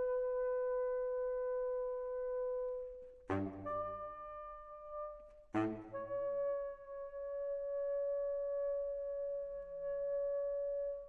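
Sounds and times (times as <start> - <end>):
baritone saxophone note: 3.3 - 7.4.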